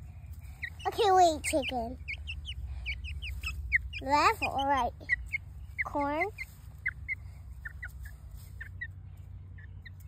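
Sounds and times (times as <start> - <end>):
chicks peeping: 0.0 - 10.0
low steady rumble: 0.0 - 10.0.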